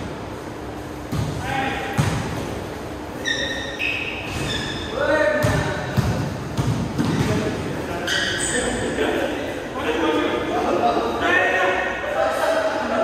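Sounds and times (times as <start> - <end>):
basketball bouncing on court: 1.1 - 2.6, 4.2 - 7.6
sneaker squeaks: 3.1 - 9.0
players' voices: 4.5 - 13.0.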